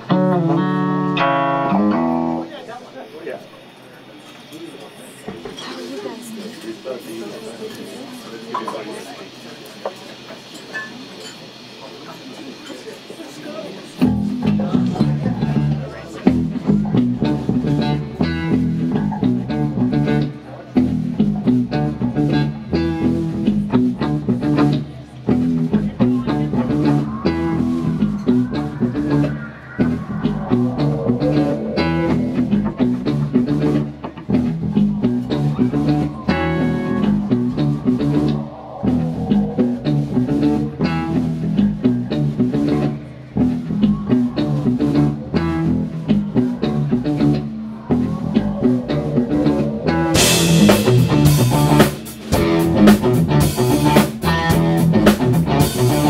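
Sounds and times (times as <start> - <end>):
bass guitar: 0.0 - 2.6, 14.0 - 56.0
drums: 0.0 - 2.6, 9.3 - 56.0
electric guitar: 0.0 - 2.8, 14.0 - 56.0.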